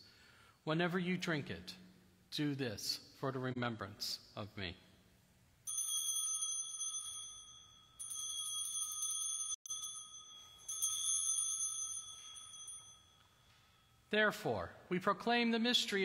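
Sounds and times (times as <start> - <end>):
small bell ringing: 5.6 - 14.0.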